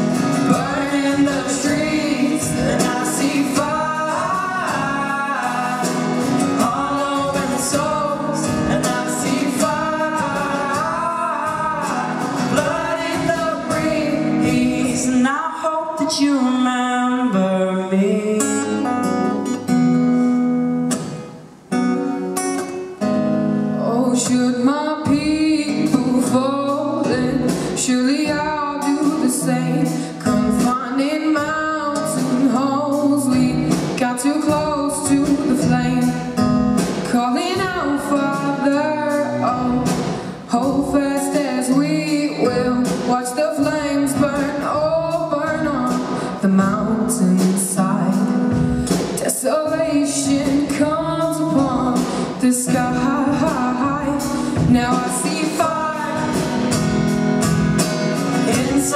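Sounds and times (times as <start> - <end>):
man singing a slow ballad: 0.0 - 19.1
acoustic guitars strumming chords: 0.0 - 58.9.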